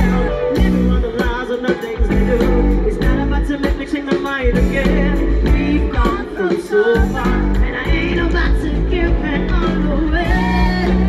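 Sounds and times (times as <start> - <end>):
drum beat: 0.0 - 11.0
heavy bass: 0.0 - 11.0
woman singing into microphone: 0.0 - 11.0.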